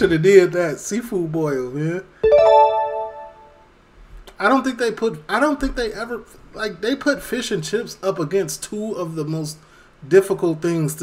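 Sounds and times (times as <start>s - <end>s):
electric piano jingle: 2.2s - 3.6s.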